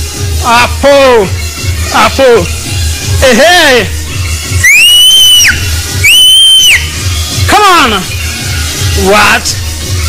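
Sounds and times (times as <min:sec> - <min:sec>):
workout music with bass beat: 0:00.0 - 0:10.0
high sliding whistle: 0:04.6 - 0:06.9.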